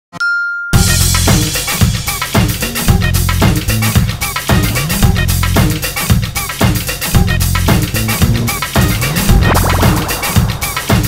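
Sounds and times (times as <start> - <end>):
bright ding: 0.2 - 0.8
upbeat music with drum beat: 0.8 - 11.0.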